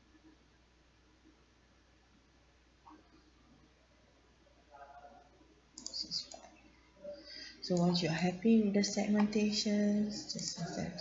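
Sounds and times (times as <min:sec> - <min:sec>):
computer mouse clicks: 0:05.8 - 0:06.6.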